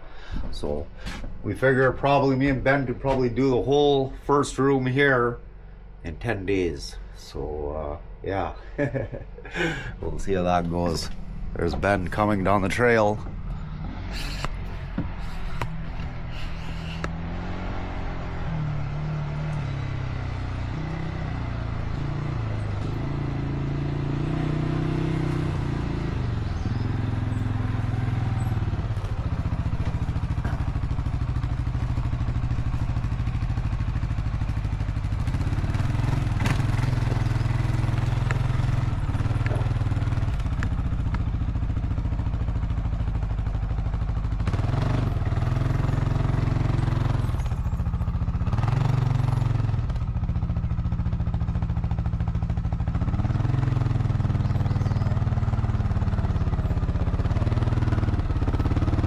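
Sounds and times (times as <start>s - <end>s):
quad engine running: 6.1s - 59.0s.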